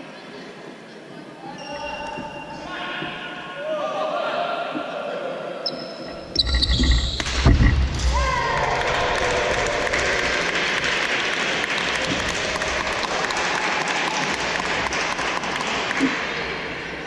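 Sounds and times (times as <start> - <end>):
audience clapping: 8.4 - 16.8.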